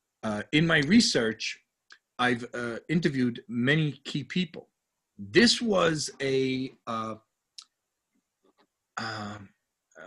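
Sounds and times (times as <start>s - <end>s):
man saying uh: 2.2s - 4.6s, 5.2s - 7.2s, 9.0s - 9.5s.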